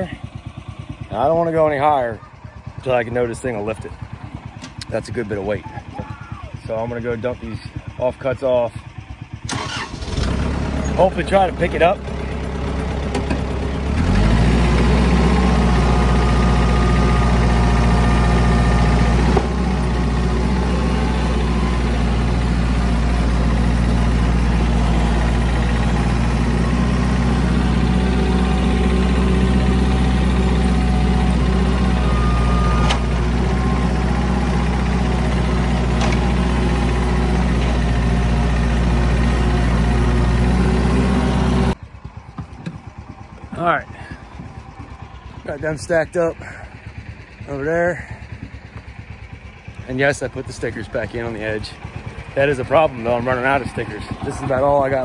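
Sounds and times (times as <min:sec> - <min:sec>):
machine engine humming: 0:00.0 - 0:55.0.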